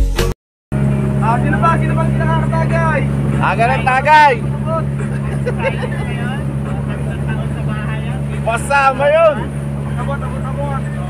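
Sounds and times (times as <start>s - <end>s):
boat engine droning: 0.7s - 11.0s
people talking: 1.2s - 11.0s.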